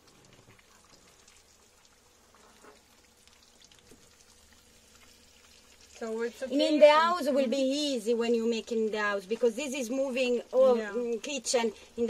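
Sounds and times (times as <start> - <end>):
fish sizzling in oil: 0.0 - 12.0
small crackles of oil: 0.0 - 12.0.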